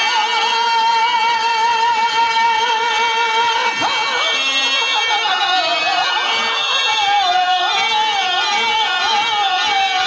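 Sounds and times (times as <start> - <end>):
harmonium drone: 0.0 - 10.0
man singing with vibrato: 0.0 - 10.0.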